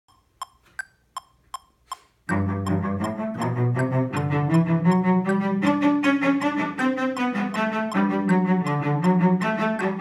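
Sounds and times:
metronome ticking: 0.1s - 10.0s
cello spiccato bow strokes: 2.3s - 10.0s.

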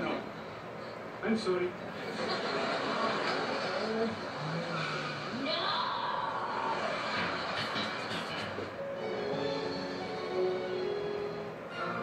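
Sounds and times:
vehicle noise from tv: 0.0s - 12.0s.

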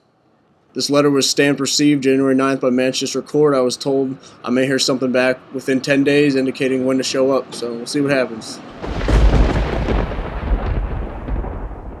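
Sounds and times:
loud deep rumble: 8.8s - 12.0s.

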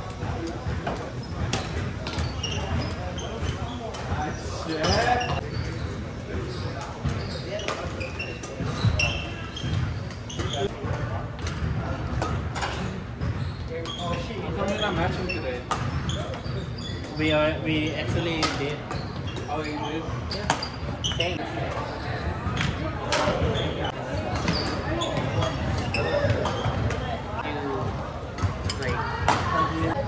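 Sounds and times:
sneaker squeaks: 0.0s - 30.0s
voices: 0.0s - 30.0s.

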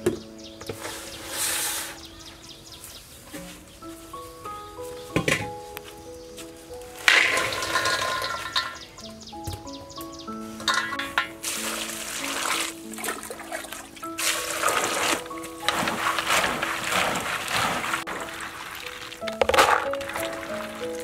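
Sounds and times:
background music: 0.0s - 21.0s
peanuts poured into metal bowl: 7.1s - 8.8s
hands swishing peanuts in water: 11.4s - 21.0s.

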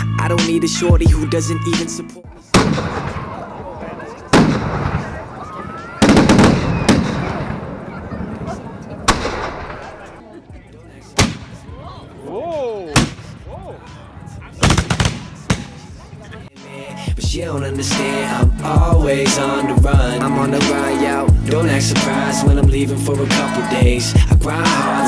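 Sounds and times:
voices: 0.0s - 25.0s
gunshots echoing: 2.5s - 3.4s, 4.3s - 5.3s, 6.0s - 7.9s, 9.0s - 10.1s, 14.6s - 15.8s.

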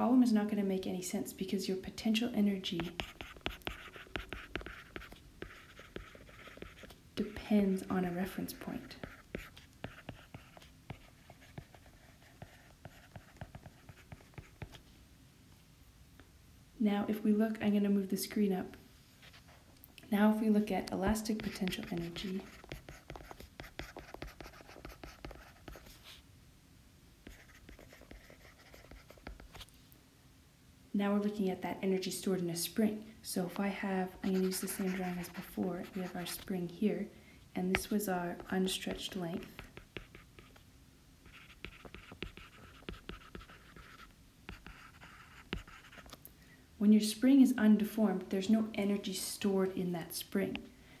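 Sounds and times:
stylus tapping and scratching screen: 2.6s - 14.8s, 20.6s - 26.2s, 27.3s - 29.7s, 33.4s - 36.7s, 37.6s - 40.6s, 41.2s - 46.2s.

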